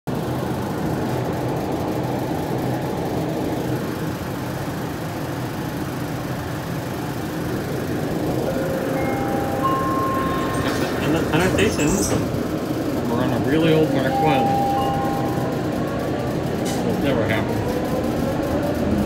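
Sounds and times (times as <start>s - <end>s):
train running rumble: 0.1s - 19.0s
rising electric whining tones: 8.0s - 12.5s.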